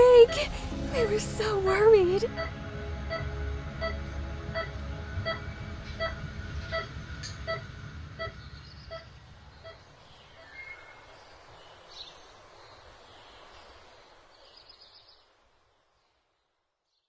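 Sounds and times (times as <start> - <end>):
low rumble: 0.0 - 9.8
heart monitor beeping: 3.1 - 9.8.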